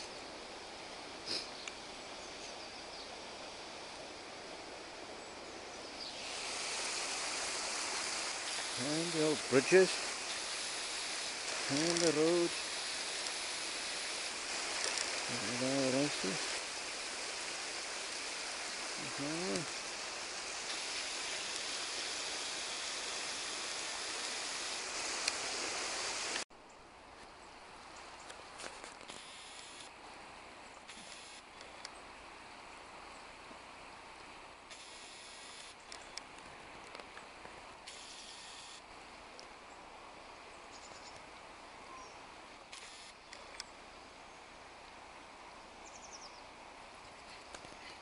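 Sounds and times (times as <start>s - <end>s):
nearer river flow: 0.0s - 48.0s
river water rushing: 3.3s - 26.4s.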